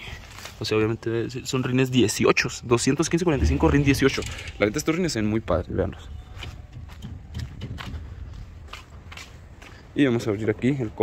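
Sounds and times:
low steady rumble: 3.3s - 6.0s
footsteps on concrete: 6.2s - 10.0s.

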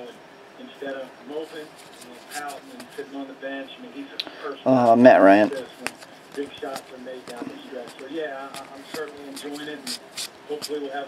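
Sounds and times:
cards rustling: 1.4s - 3.1s, 4.7s - 11.0s.

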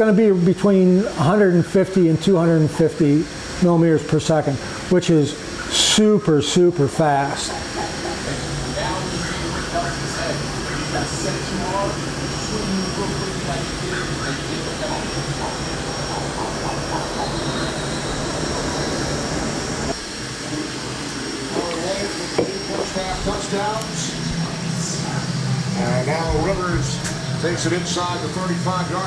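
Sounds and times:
three d printer whirring: 5.4s - 29.0s.

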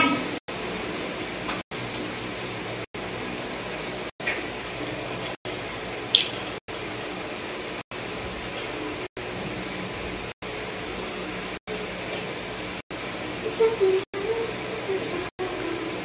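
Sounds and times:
room hiss: 0.0s - 16.0s.

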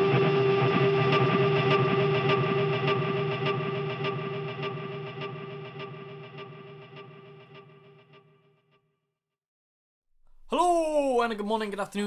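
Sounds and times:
electric guitar music: 0.0s - 8.4s.

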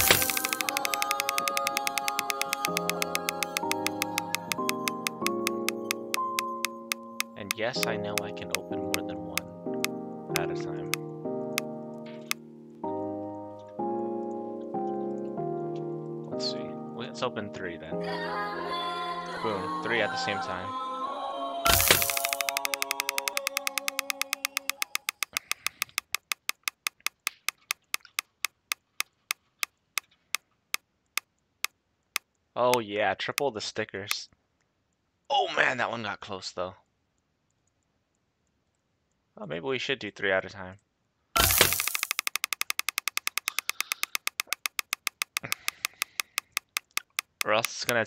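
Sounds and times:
rapid slowing ticks: 0.0s - 12.4s, 21.7s - 32.8s, 41.5s - 48.0s
background music: 0.0s - 25.2s.

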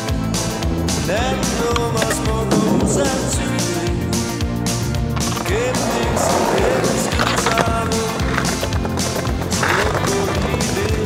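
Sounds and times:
music with steady beat: 0.0s - 11.0s
skateboard wheels rolling on pavement: 0.0s - 11.0s.

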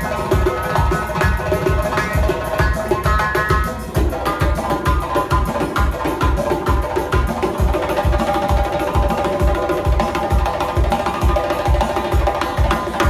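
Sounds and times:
frame drums beaten by hand: 0.0s - 13.0s.

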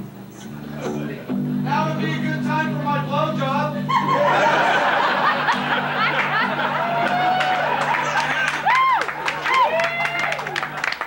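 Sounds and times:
people laughing and talking: 0.6s - 11.0s
man laughing: 3.7s - 8.6s.

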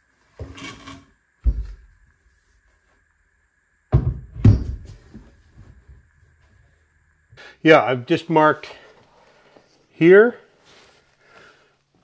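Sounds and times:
loud wooden knocks: 3.9s - 5.0s.

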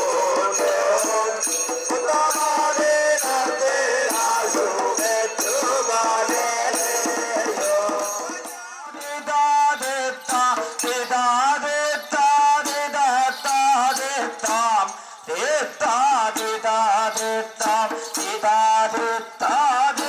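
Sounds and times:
fast drum strokes: 0.0s - 11.4s
voices chanting a song: 0.0s - 11.8s
rattling jingle: 0.0s - 20.0s.

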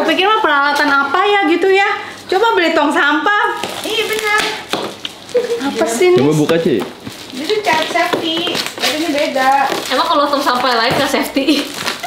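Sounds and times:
women talking: 0.0s - 4.7s, 5.4s - 6.3s, 7.3s - 12.0s.

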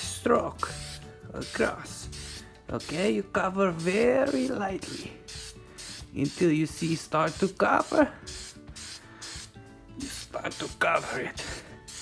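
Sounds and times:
background music: 0.0s - 12.0s
spray paint can hissing: 0.6s - 12.0s.

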